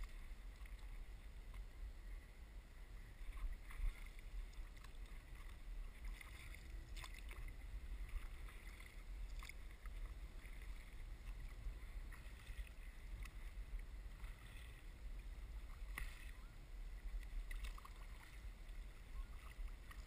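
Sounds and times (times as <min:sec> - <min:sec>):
steady low rumble: 0:00.0 - 0:20.0
paddle splashing in water: 0:03.0 - 0:20.0.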